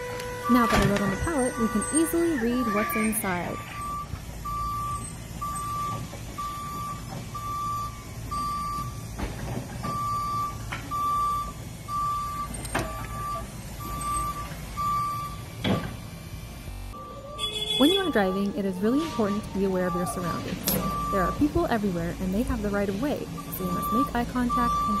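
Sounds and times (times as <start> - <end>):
forklift warning alarm beeping: 0.0 - 25.0.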